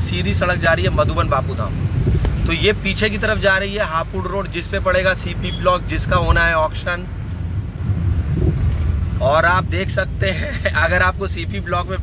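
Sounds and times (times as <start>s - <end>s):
vehicle rumble on road: 0.0s - 12.0s.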